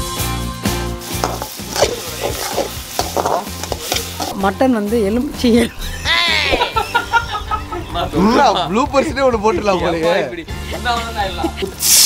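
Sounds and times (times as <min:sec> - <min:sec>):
background music beat: 0:00.0 - 0:12.0
food sizzling in a pan: 0:00.6 - 0:06.1, 0:11.8 - 0:12.0
metal spoon scraping a pan: 0:01.1 - 0:04.5.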